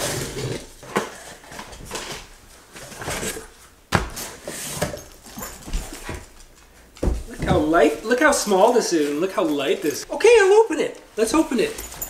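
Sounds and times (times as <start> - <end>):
cardboard and fabric rustling: 11.1 - 12.0.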